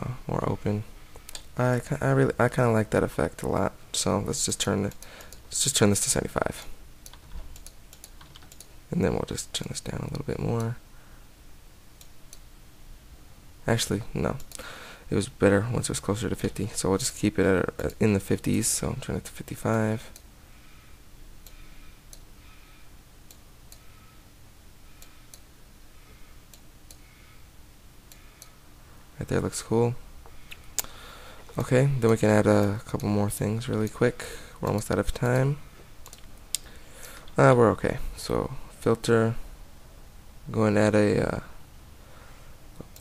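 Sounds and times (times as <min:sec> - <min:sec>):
low background hiss: 0:00.0 - 0:43.0
computer keyboard keystrokes: 0:07.0 - 0:08.7
computer mouse clicks: 0:07.0 - 0:08.7, 0:34.7 - 0:36.7, 0:42.8 - 0:43.0.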